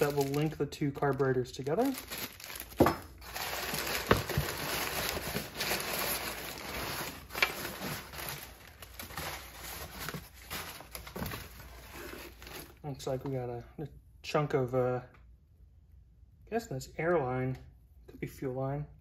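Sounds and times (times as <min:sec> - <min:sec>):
packing paper rustling: 0:00.0 - 0:12.8.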